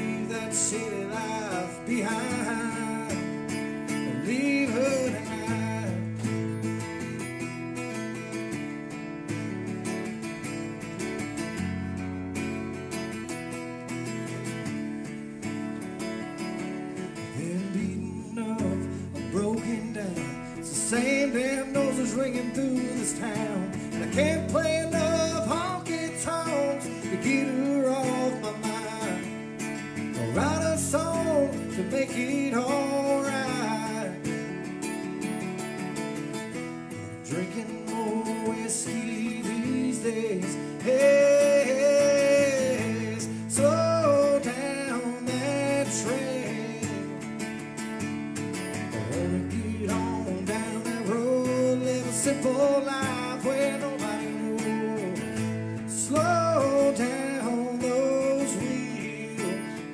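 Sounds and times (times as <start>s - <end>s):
man singing country song: 0.0s - 59.9s
strummed acoustic guitar: 0.0s - 59.9s.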